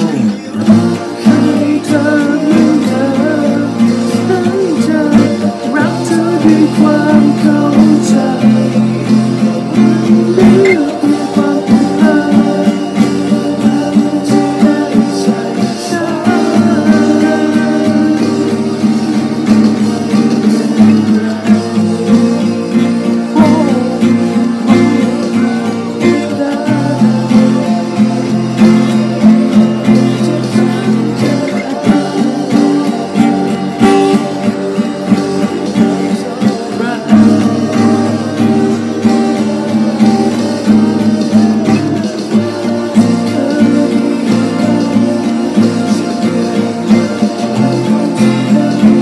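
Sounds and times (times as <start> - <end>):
acoustic guitar strumming chords: 0.0 - 49.0.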